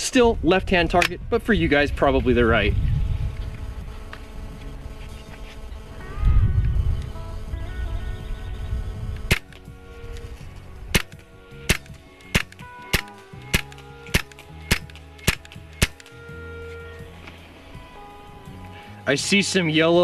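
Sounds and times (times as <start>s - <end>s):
low rumble: 0.3s - 12.6s
air rifle shots: 9.2s - 9.7s, 10.9s - 16.2s.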